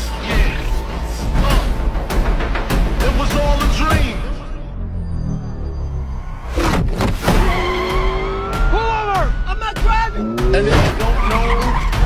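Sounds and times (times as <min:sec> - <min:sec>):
movie trailer music: 0:00.0 - 0:12.0
tyres squealing: 0:10.1 - 0:12.0.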